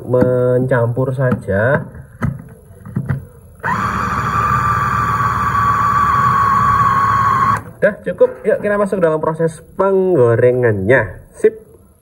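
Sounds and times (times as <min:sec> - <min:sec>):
food chopper motor whine: 0:03.6 - 0:07.7.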